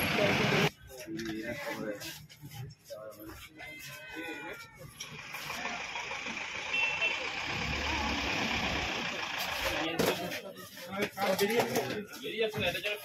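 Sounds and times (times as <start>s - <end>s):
motor vehicle engine running: 5.0s - 10.0s.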